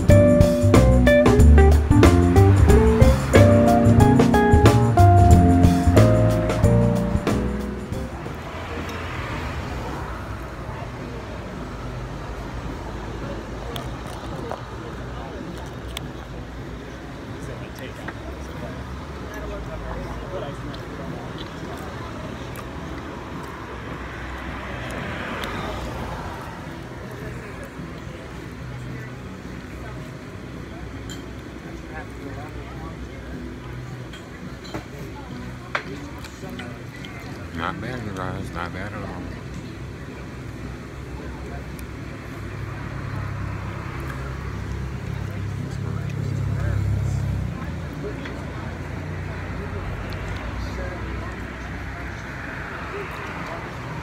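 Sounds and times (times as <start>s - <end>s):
vehicle noise rumble: 0.0s - 54.0s
faint murmur of voices: 3.3s - 54.0s.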